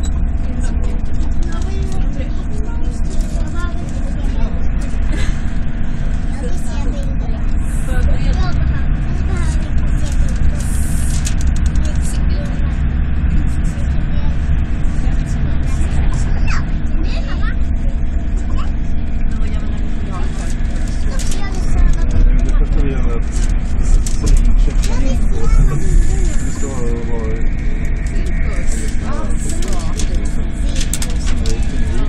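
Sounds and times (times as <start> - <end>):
indistinct voices talking: 0.0 - 32.0
train rumbling from inside carriage: 0.0 - 32.0.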